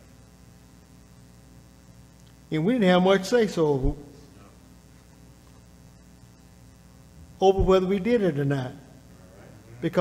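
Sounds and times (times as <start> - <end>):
low electrical mains hum: 0.0 - 10.0.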